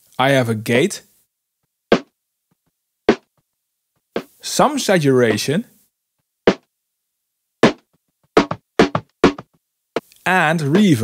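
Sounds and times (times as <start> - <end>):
sharp snare drum hits: 1.9 - 2.1, 3.1 - 3.3, 7.6 - 9.5.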